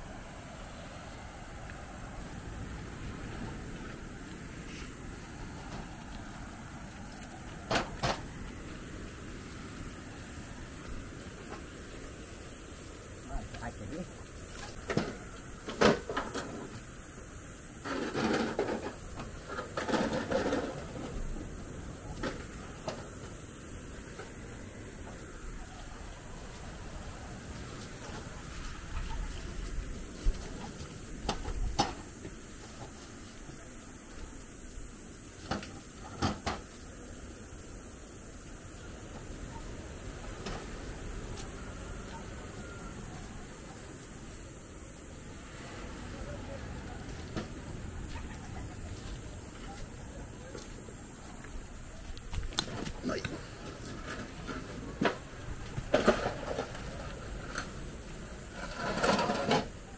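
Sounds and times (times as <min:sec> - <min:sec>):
steady background hiss: 0:00.0 - 0:59.9.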